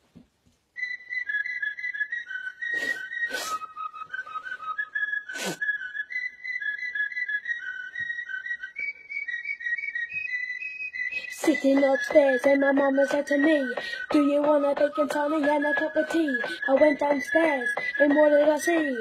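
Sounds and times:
whistled melody: 0.7 - 19.0.

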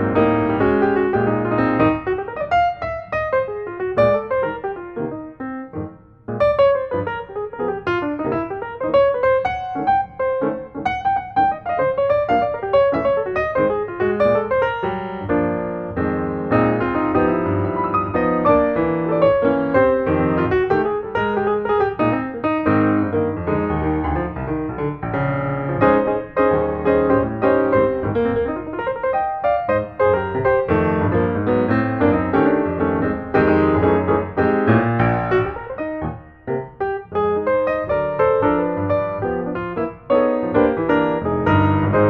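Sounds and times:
piano music with quick notes: 0.0 - 42.0.

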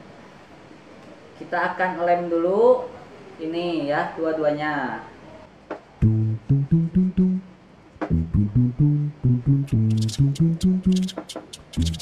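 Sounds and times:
plucked string bass melody: 6.0 - 12.0
crisp ticking percussion: 8.1 - 12.0.

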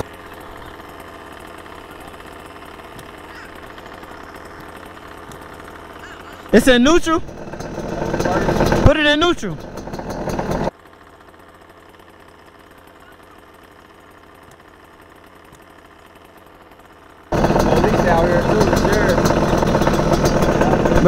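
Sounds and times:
dirt bike engine idling: 0.0 - 21.0.

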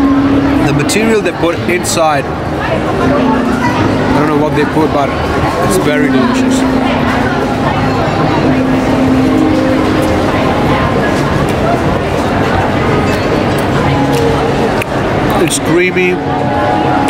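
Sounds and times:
background music: 0.0 - 17.0
traffic: 0.0 - 17.0
voices of passers-by: 0.0 - 17.0.

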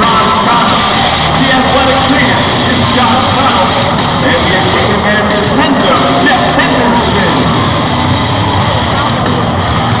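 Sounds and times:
arena crowd cheering and shouting: 0.0 - 10.0
steady high tone: 0.0 - 10.0.

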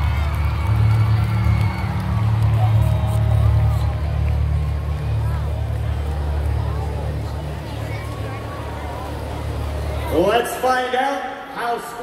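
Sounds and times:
murmur of audience voices: 0.0 - 12.0.

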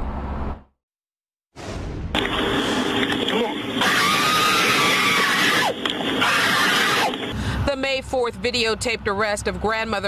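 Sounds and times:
woman screaming: 3.8 - 7.1.

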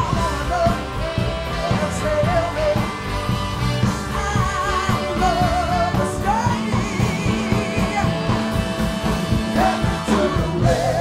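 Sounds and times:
woman singing with vibrato: 0.0 - 3.0, 3.7 - 11.0
live rock band: 0.0 - 11.0.

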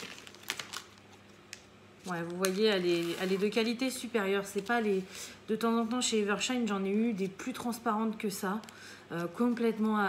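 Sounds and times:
plastic packaging crinkling: 0.0 - 5.0.

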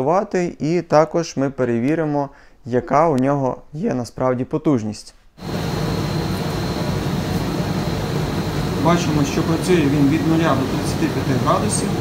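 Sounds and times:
dehumidifier fan rushing air: 5.4 - 12.0.

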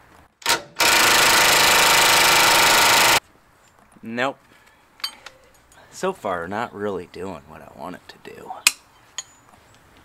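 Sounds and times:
impact wrench hammering: 0.4 - 3.2.

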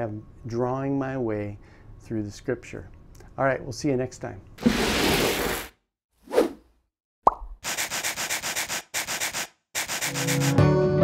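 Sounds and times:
cartoon pop with falling pitch: 7.2 - 7.6.

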